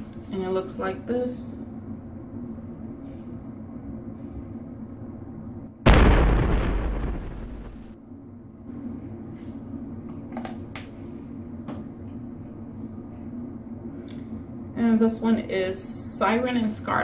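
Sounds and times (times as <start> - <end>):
explosion-like boom: 5.9 - 7.9.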